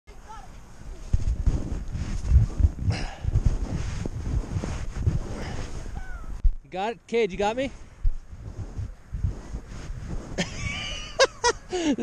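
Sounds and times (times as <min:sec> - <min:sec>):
wind buffeting microphone: 0:00.1 - 0:06.7, 0:07.3 - 0:12.0
rustling and handling noise: 0:00.9 - 0:06.6.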